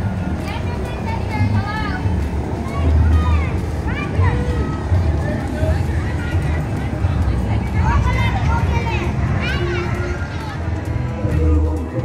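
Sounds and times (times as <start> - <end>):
music from a parade float: 0.0 - 12.0
people calling and whooping: 0.0 - 12.0
truck engine rumble: 0.0 - 12.0.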